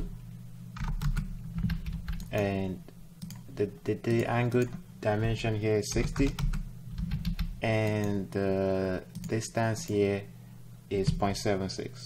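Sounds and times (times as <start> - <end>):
computer keyboard keystrokes: 0.8 - 2.5, 5.9 - 8.2, 9.1 - 10.0.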